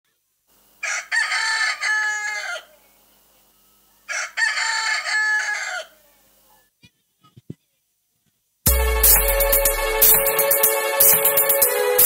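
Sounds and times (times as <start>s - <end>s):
recorded rooster crowing: 0.8s - 3.0s, 4.0s - 6.2s.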